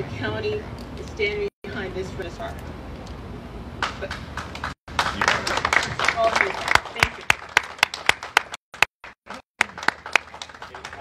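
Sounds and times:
audience hand clapping: 0:03.8 - 0:11.0.

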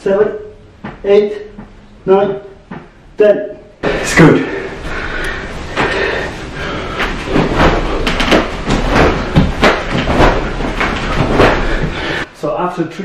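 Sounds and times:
cotton uniform rustling: 0:05.5 - 0:12.2
bare feet thumping wooden floor: 0:06.9 - 0:12.2.

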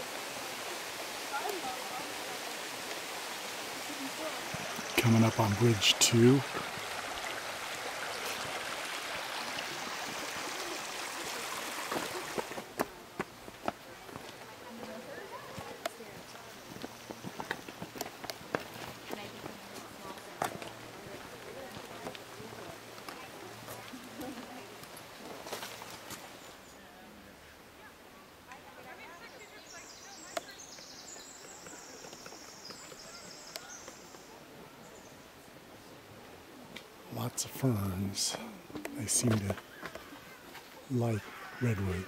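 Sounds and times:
creek flowing: 0:00.0 - 0:42.0
faint distant voices: 0:00.0 - 0:42.0
footsteps on forest trail: 0:09.3 - 0:26.5, 0:29.9 - 0:34.3, 0:37.5 - 0:42.0.

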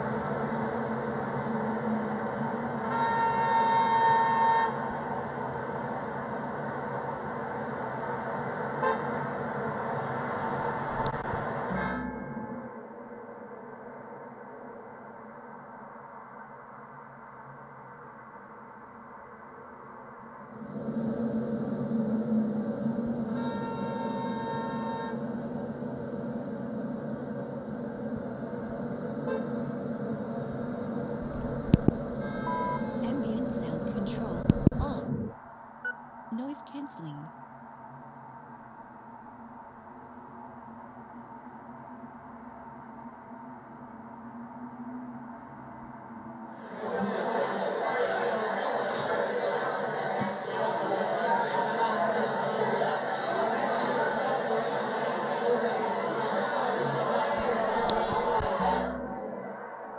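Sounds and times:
car horn honking: 0:02.8 - 0:04.9, 0:08.8 - 0:09.2, 0:11.7 - 0:12.6, 0:23.3 - 0:25.2, 0:29.3 - 0:29.5, 0:32.2 - 0:33.6.

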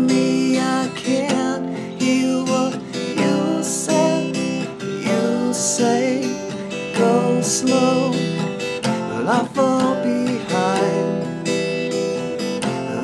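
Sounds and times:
man singing: 0:00.0 - 0:11.6, 0:12.6 - 0:13.0
acoustic guitar strumming: 0:00.0 - 0:13.0.

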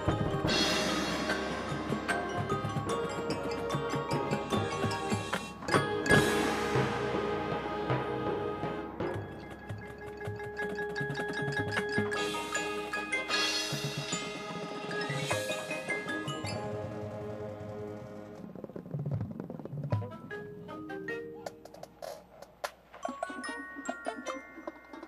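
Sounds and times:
mallet percussion notes: 0:00.0 - 0:07.4, 0:09.0 - 0:17.1, 0:23.0 - 0:25.0
marching band playing chords: 0:00.0 - 0:10.5
drumline hits: 0:00.0 - 0:15.4.

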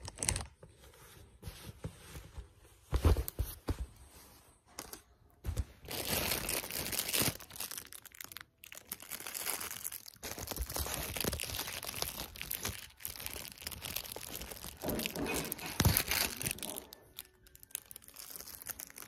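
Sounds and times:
rustling and crinkling handling noise: 0:00.0 - 0:19.0.

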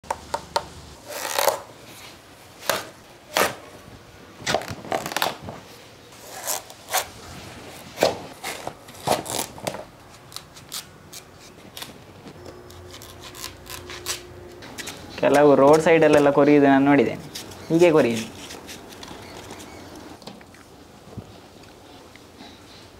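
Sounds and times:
knife cutting watermelon rind: 0:01.0 - 0:03.7, 0:06.2 - 0:16.3, 0:17.2 - 0:19.8.

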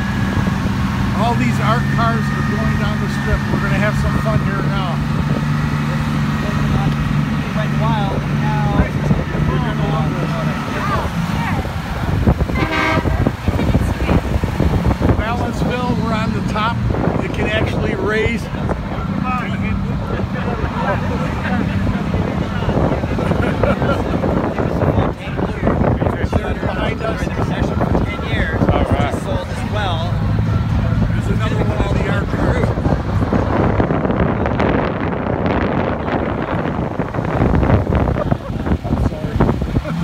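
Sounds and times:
engine running: 0:00.0 - 0:40.0
vehicle horns tooting: 0:12.4 - 0:13.7.

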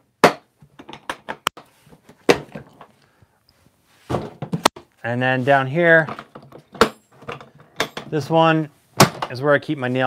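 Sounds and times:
tool box thunk on concrete: 0:00.2 - 0:01.5, 0:09.0 - 0:09.3.

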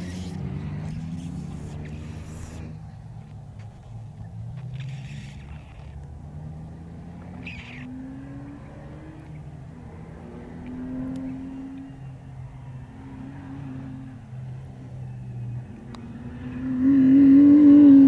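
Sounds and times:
distant race car engine revving: 0:00.0 - 0:18.0.

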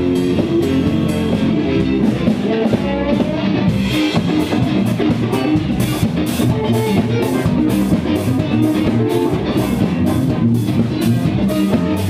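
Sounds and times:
live band with guitar and drums: 0:00.0 - 0:12.0.

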